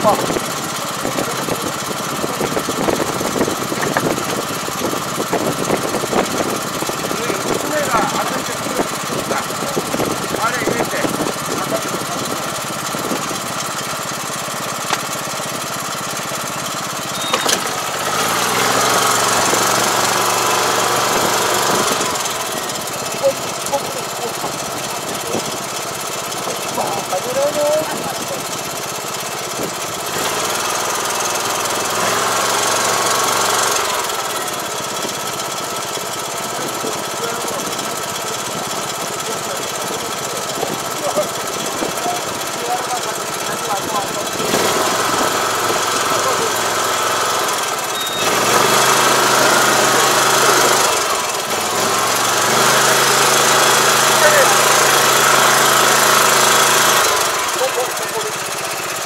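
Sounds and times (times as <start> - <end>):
rice transplanter running: 0.0 - 59.0.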